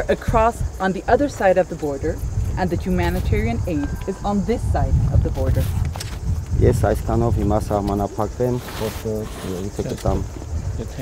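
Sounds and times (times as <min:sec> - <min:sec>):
man speaking quietly: 0:06.9 - 0:11.0.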